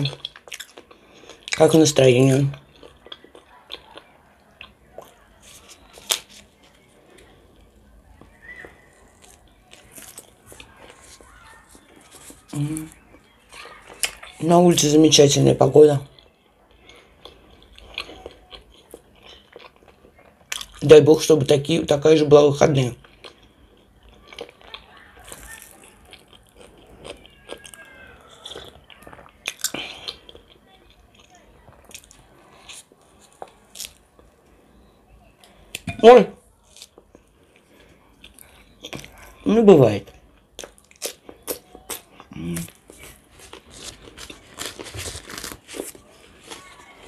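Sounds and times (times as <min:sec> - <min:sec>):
person chewing: 0:00.0 - 0:15.0, 0:16.0 - 0:20.8, 0:23.0 - 0:47.0.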